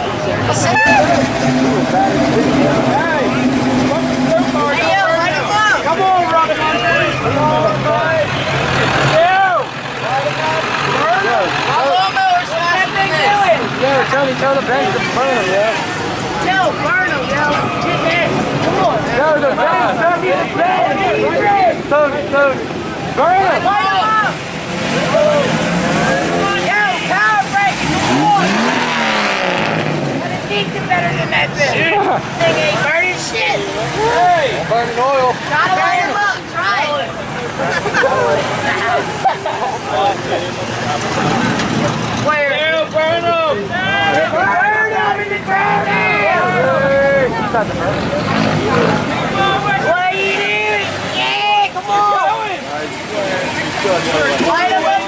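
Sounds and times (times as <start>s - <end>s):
cars and trucks driving past: 0.0s - 55.0s
crowd talking and shouting: 0.0s - 55.0s
engine revving: 0.4s - 6.2s, 24.4s - 31.2s, 40.5s - 42.3s, 46.4s - 49.8s.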